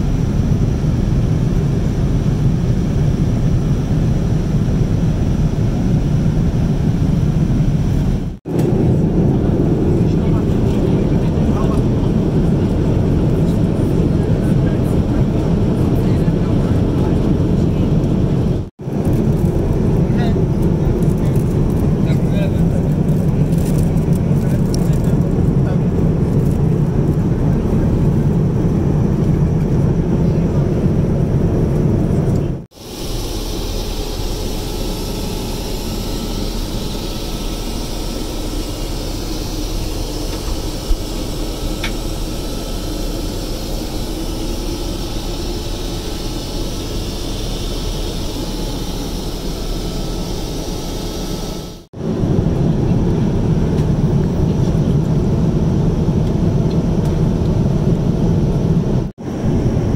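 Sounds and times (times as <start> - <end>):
airplane cabin engine rumble: 0.0 - 59.9.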